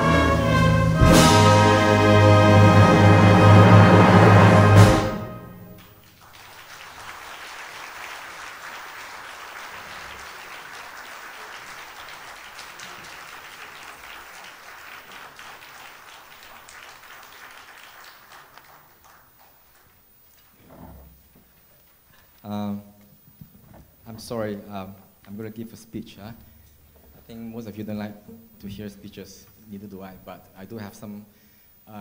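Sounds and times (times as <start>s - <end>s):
wind band final chord: 0.0s - 5.8s
audience applause: 0.0s - 20.6s.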